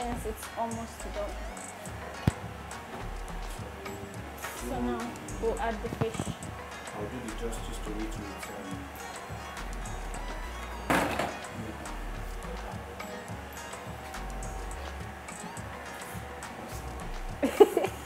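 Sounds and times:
background music with bass line: 0:00.0 - 0:18.0.

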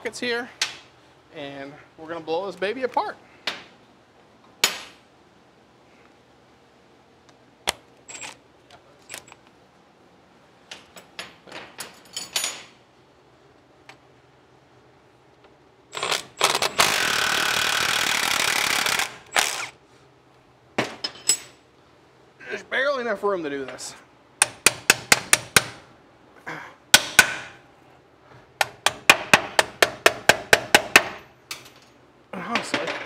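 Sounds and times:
tools clicking and clinking: 0:07.7 - 0:09.6
impact wrench hammering: 0:24.4 - 0:25.8, 0:26.9 - 0:27.6, 0:28.6 - 0:31.3.

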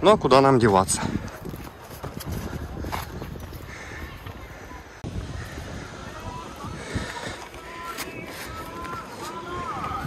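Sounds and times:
footsteps on gravelly dirt trail: 0:00.6 - 0:10.0.

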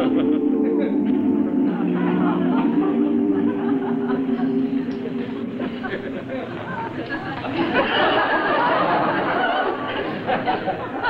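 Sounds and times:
audience laughing and murmuring: 0:00.0 - 0:11.0.

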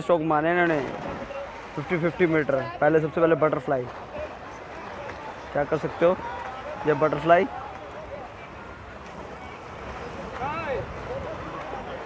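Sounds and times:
swimmers splashing in pool: 0:00.0 - 0:12.0.

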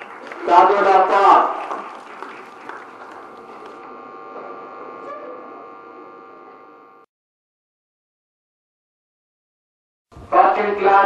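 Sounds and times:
electrical hum: 0:00.0 - 0:07.1.

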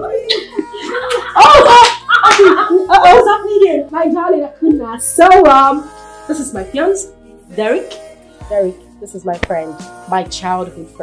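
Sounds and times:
excited voices exclaiming: 0:01.0 - 0:03.5.

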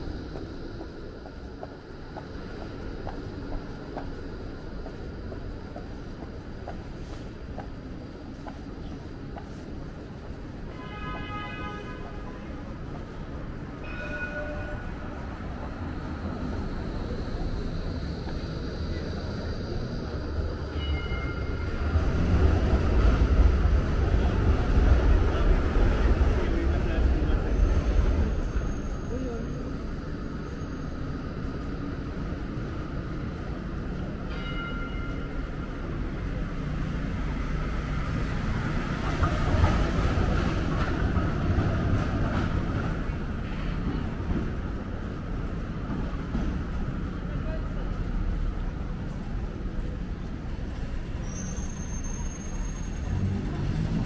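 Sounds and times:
tram rumbling past: 0:00.0 - 0:54.0
people talking: 0:24.2 - 0:28.3, 0:47.2 - 0:48.3.

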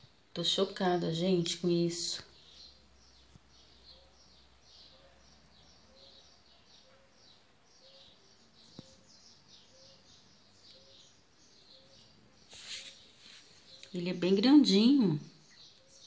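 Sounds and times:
faint high chirping: 0:01.1 - 0:16.0.

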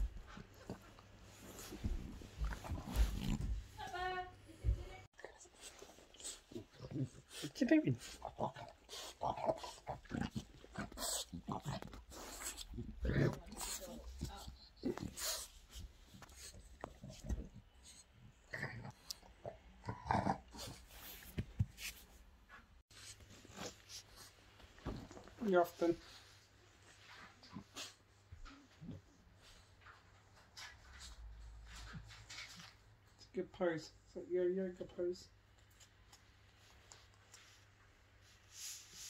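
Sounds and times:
dog sniffing: 0:05.2 - 0:17.3.

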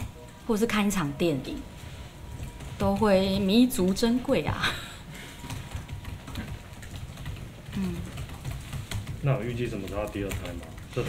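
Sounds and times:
computer keyboard typing: 0:02.2 - 0:11.0.

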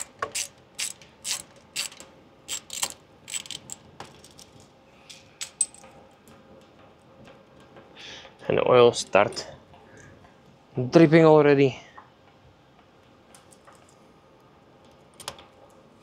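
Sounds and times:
hand ratchet clicking: 0:00.0 - 0:03.8.

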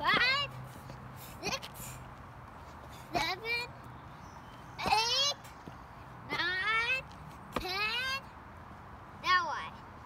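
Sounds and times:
child's high-pitched calls: 0:04.8 - 0:05.4, 0:09.2 - 0:09.8.

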